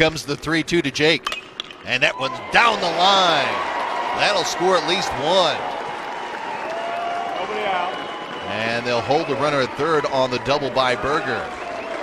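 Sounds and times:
crowd cheering and clapping: 2.0 - 12.0.

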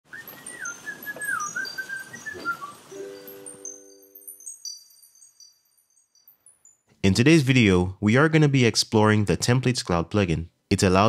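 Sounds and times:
gliding bird-like whistle: 0.1 - 5.4
bright high chimes: 0.1 - 6.9.

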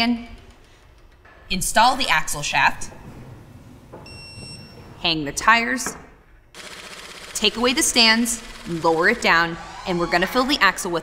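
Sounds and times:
low shop rumble: 6.6 - 11.0.

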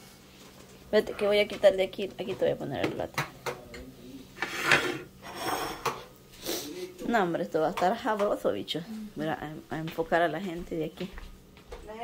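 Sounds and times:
plates scraping on countertop: 4.3 - 6.1.

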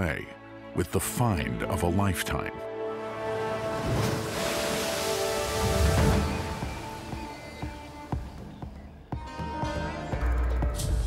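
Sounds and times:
background music with held notes: 0.0 - 11.0
ocean wave breaking on rocks: 3.4 - 8.5.

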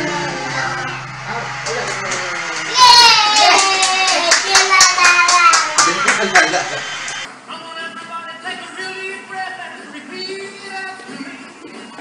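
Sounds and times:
background music: 0.0 - 3.0.

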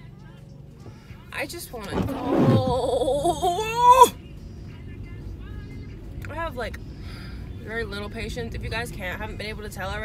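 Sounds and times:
car road and engine rumble: 0.0 - 10.0.

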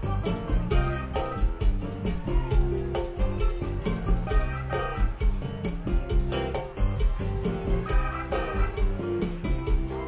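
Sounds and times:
bass guitar: 0.0 - 10.0
steady drum beat: 0.0 - 10.0.

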